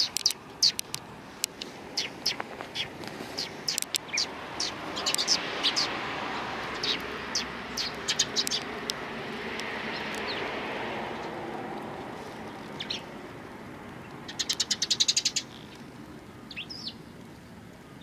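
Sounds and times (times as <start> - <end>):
sparrows chirping: 0.0 - 18.0.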